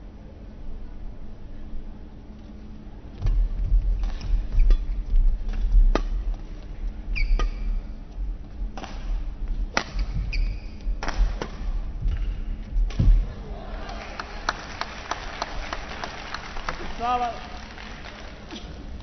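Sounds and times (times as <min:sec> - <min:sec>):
shoes squeaking on court: 0:07.1 - 0:07.8, 0:10.0 - 0:10.9
rackets hitting shuttlecock: 0:08.8 - 0:10.3, 0:11.0 - 0:12.3.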